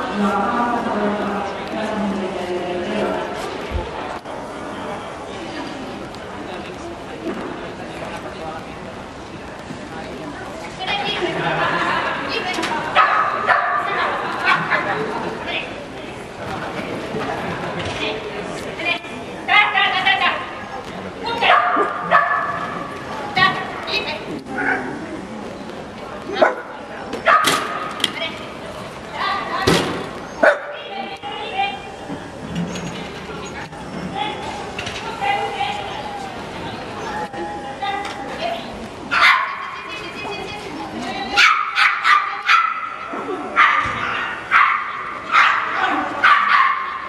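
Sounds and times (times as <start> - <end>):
dog yapping high-pitched: 27.3 - 27.6, 39.2 - 39.6, 41.4 - 42.9, 43.6 - 47.0.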